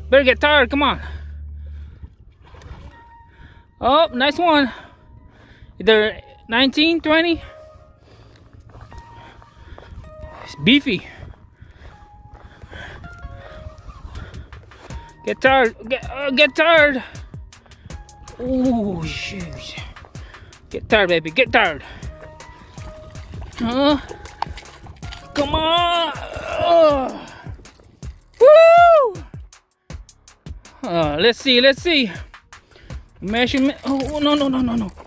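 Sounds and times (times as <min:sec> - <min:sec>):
wind rumbling on microphone: 0:01.2 - 0:03.8, 0:08.4 - 0:15.2
man yelling high-pitched: 0:25.3 - 0:27.3, 0:28.4 - 0:29.3.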